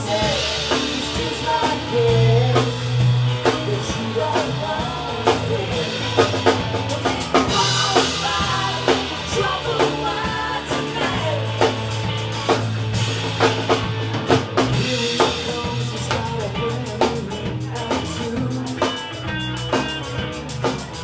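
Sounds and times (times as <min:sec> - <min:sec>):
rock band playing: 0:00.0 - 0:21.0.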